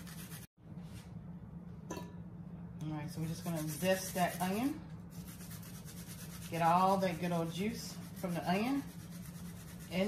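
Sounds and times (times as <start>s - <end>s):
steady low hum: 0.0s - 10.0s
woman speaking: 2.8s - 4.8s, 6.5s - 8.9s.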